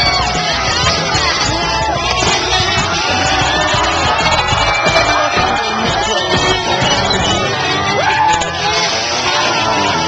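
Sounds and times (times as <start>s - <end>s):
crowd cheering and shouting: 0.0s - 10.0s
music playing: 0.0s - 10.0s.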